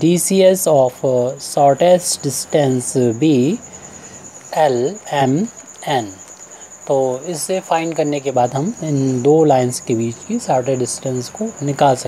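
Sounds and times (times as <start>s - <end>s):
insect trilling: 0.0s - 12.0s
person speaking: 4.4s - 6.3s, 6.9s - 12.0s.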